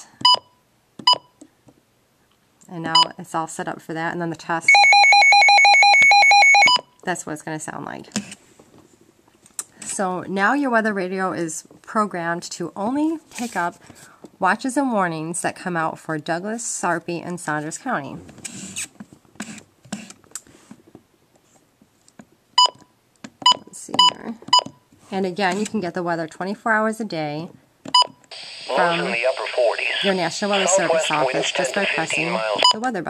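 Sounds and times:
radio key beep: 28.7s - 32.8s.

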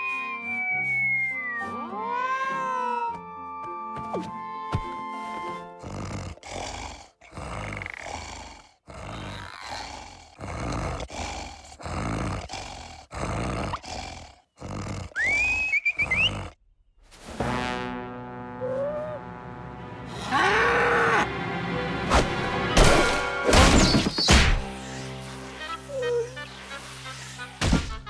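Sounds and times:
rising whistle: 0.0s - 1.8s, 15.2s - 16.4s
musical tones: 0.0s - 2.4s
cartoon snoring: 5.7s - 16.6s.

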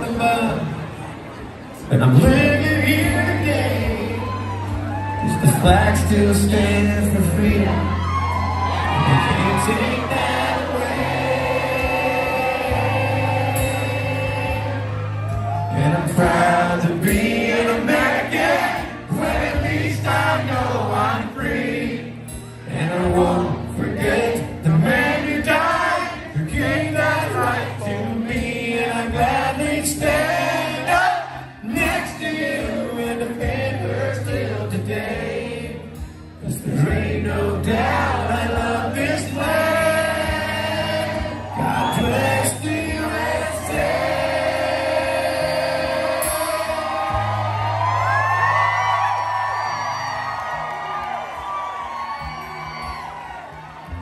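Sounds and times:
acoustic guitar: 0.0s - 54.0s
man singing: 1.9s - 4.6s, 5.2s - 8.1s, 8.9s - 14.9s, 15.6s - 47.1s.

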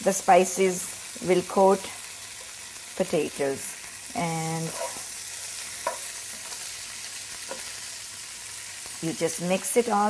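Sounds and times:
potatoes sizzling in a frying pan: 0.0s - 10.0s.

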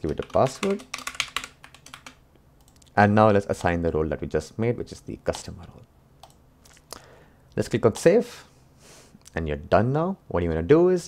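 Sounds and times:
keyboard typing: 0.0s - 2.9s.

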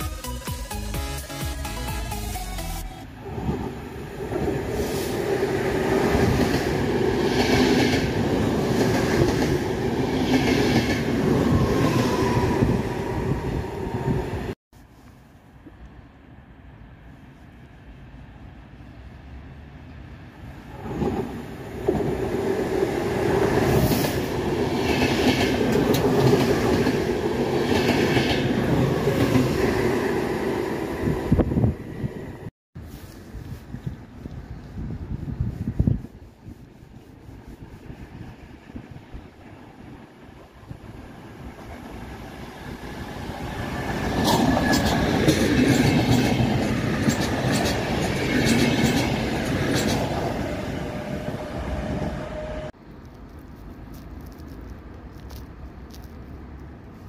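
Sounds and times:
train rumbling on rails: 3.0s - 14.6s, 17.9s - 57.0s.

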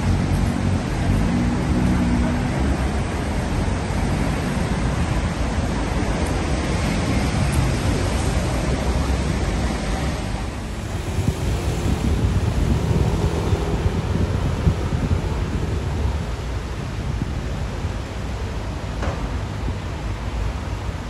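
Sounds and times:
city street background noise: 0.0s - 21.0s
wind rumbling on microphone: 0.0s - 21.0s.

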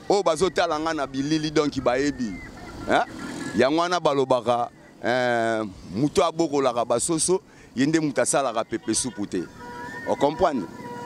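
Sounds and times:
man talking into a microphone: 0.0s - 10.8s
street traffic noise: 0.0s - 11.0s.

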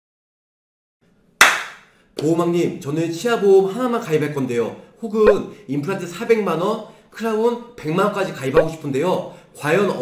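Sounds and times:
sharp hand clap: 1.4s - 1.9s.

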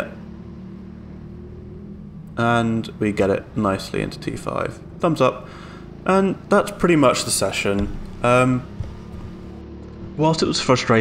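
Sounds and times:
go-kart engine humming: 0.0s - 11.0s.

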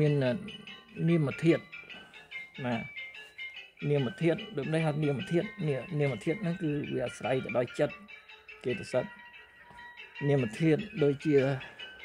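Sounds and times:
man speaking: 0.0s - 1.6s, 2.6s - 2.9s, 3.8s - 8.0s, 8.6s - 9.1s, 10.2s - 11.7s
bell-like chiming tones: 0.0s - 12.0s
soft background music: 0.0s - 12.0s.

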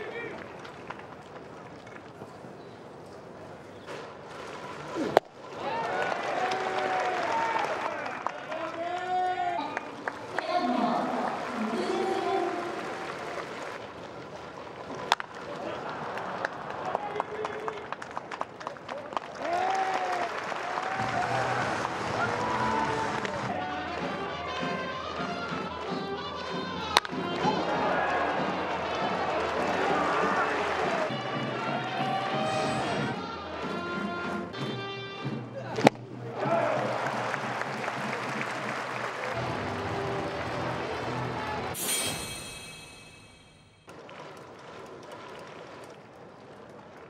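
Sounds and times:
stadium background: 0.0s - 47.0s
people talking: 9.0s - 12.9s
baseball bat cracking ball: 26.9s - 27.5s.

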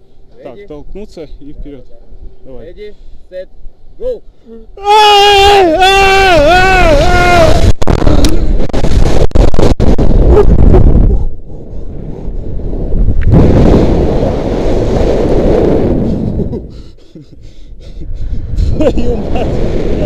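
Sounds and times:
wind rushing over microphone: 5.2s - 20.0s.

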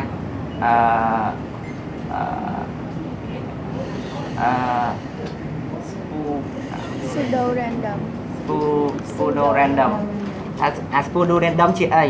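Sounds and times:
steady background noise: 0.0s - 12.0s
person making hesitation sound: 3.8s - 5.4s.

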